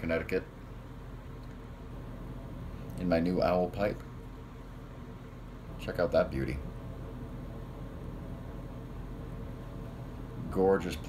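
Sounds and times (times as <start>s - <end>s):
background hiss: 0.0s - 11.0s
low hum: 0.0s - 11.0s.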